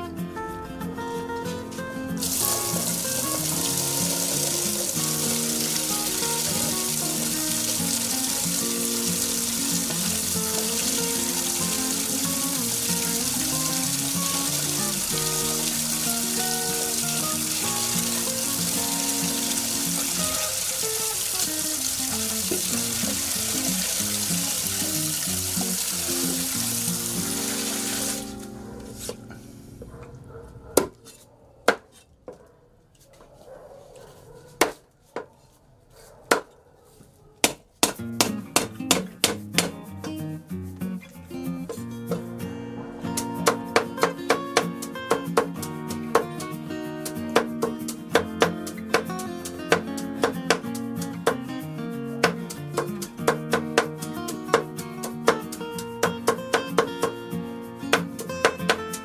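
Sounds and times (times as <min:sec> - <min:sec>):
background music: 0:00.0 - 0:29.9, 0:37.9 - 0:59.0
hands washing meat: 0:02.2 - 0:29.2
tap water running into basin: 0:02.2 - 0:29.2, 0:43.4 - 0:57.2
knife chopping on cutting board: 0:37.4 - 0:39.8.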